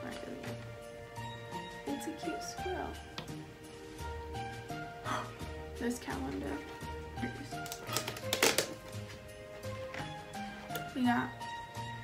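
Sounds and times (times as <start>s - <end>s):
background music: 0.0s - 12.0s
cardboard crackling clicks: 7.6s - 9.0s.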